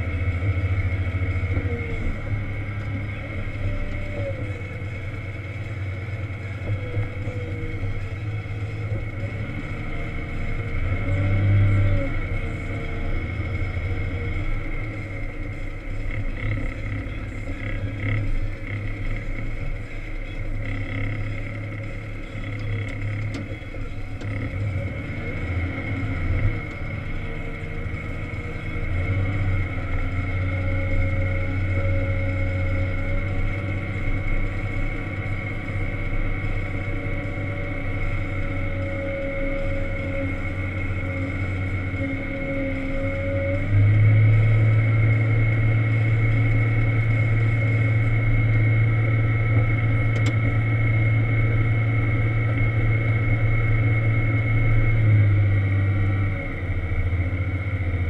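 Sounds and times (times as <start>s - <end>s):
diesel engine under load: 0.0s - 58.0s
steady high whine: 0.0s - 58.0s.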